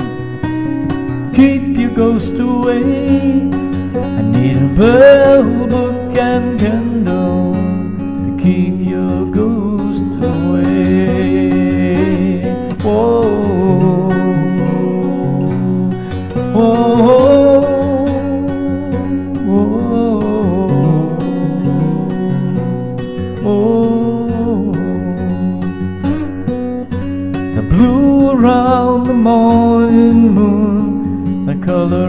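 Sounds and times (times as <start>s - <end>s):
fingerpicked acoustic guitar: 0.0s - 32.0s.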